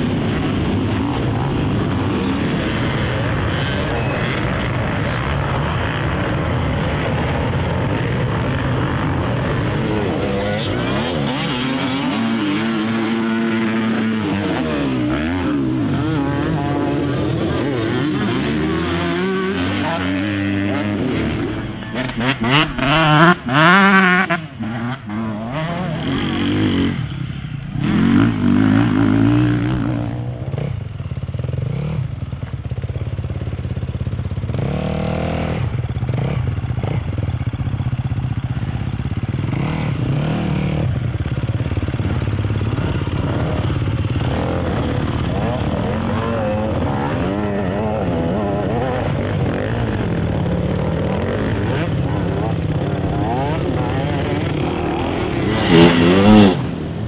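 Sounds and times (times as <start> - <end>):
dirt bike engines revving: 0.0 - 57.0
distant motorcycle engines droning: 0.0 - 57.0.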